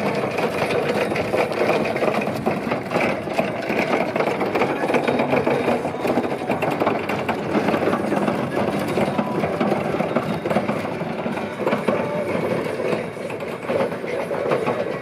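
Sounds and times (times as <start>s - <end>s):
hard wheels rattling over bricks: 0.0s - 15.0s.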